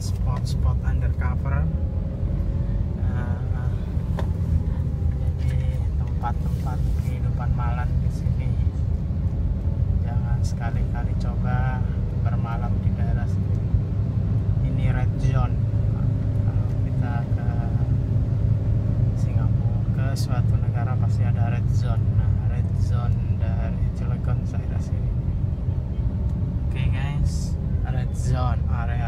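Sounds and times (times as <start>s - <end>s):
car engine and tyres rumble: 0.0s - 29.0s.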